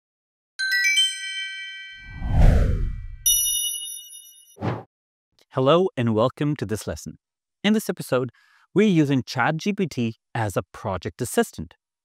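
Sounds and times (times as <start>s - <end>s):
rising chime notes: 0.6s - 2.3s, 2.9s - 4.6s
whoosh: 2.0s - 3.2s
bright ding: 3.2s - 4.6s.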